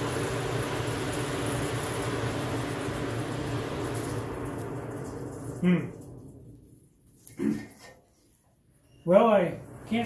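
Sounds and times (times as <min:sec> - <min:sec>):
forge fire air rushing: 0:00.0 - 0:07.3, 0:09.1 - 0:10.0.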